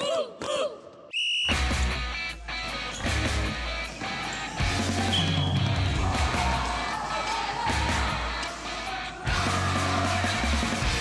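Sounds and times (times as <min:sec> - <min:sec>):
sports whistle blast: 0:01.1 - 0:01.9, 0:05.0 - 0:05.8.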